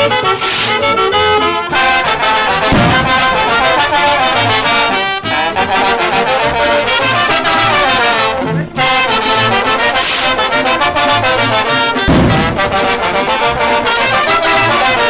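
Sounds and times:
brass band playing dance tune: 0.0s - 15.0s.

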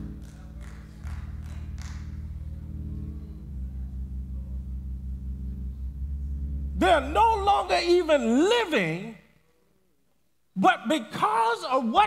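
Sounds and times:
low keyboard chords: 0.0s - 9.2s.

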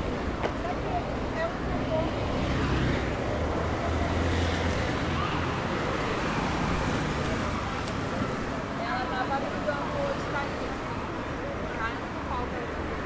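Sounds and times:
passing cars: 0.0s - 13.0s.

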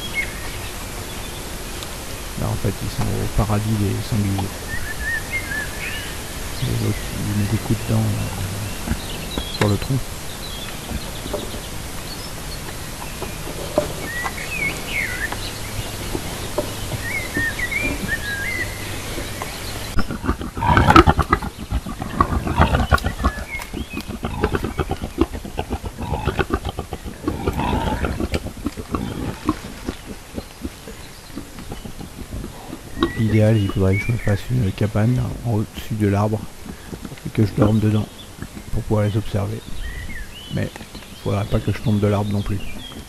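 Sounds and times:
faint bird chirps: 0.0s - 43.0s
wild boar grunting and snuffling: 2.3s - 43.0s.

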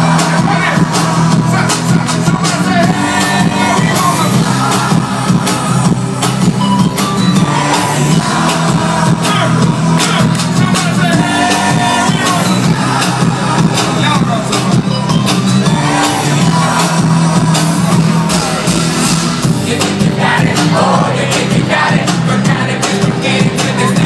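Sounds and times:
crowd noise: 0.0s - 24.0s
hip-hop music with heavy bass: 0.0s - 24.0s.

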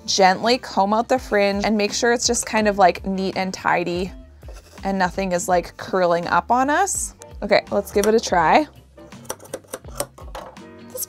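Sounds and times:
background music: 0.0s - 11.0s
scissors snipping yarn: 9.1s - 11.0s.

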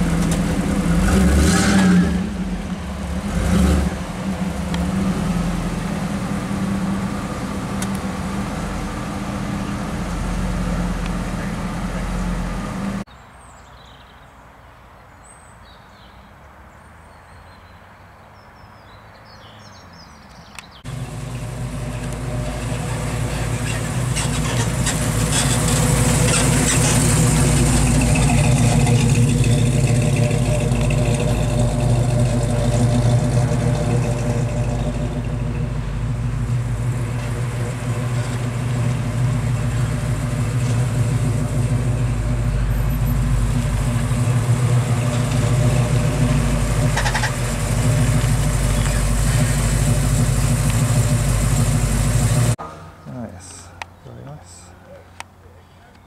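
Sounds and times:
car engine running slowly: 2.3s - 13.1s, 20.9s - 52.6s.

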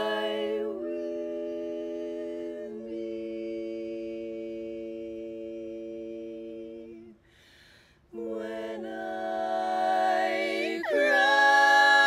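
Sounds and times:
women singing a cappella chords: 0.0s - 12.0s.

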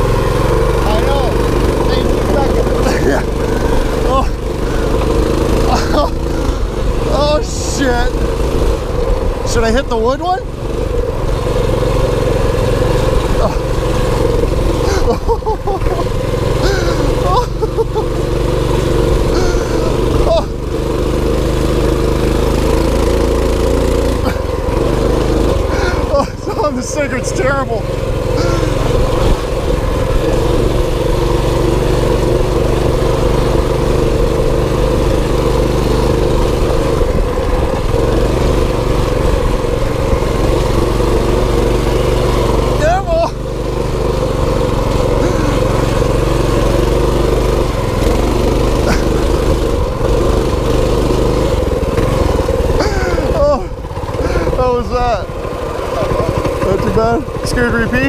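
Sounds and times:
voices calling out: 0.0s - 8.6s, 11.4s - 23.1s, 23.7s - 32.9s, 39.6s - 51.2s, 52.0s - 58.0s
small engine running: 0.0s - 58.0s.

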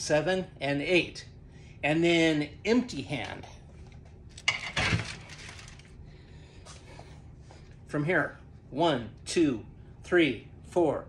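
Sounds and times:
clatter and rustle of movement: 3.7s - 6.0s.

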